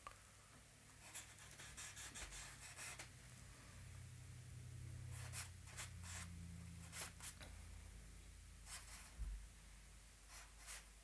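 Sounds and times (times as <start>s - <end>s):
low steady hum: 0.0s - 11.0s
charcoal scratching on paper: 1.0s - 3.1s, 5.1s - 7.4s, 8.6s - 9.2s, 10.3s - 11.0s.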